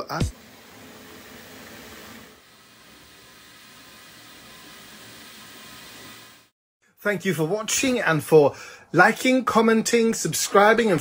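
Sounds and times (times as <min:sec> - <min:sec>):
bath tap running into tub: 0:00.3 - 0:06.5.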